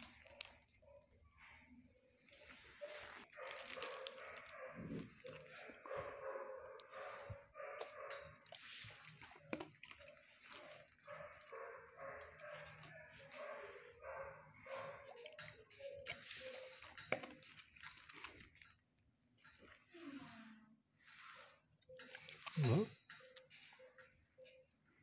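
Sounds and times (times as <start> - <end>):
dogs barking: 0.0 - 17.5.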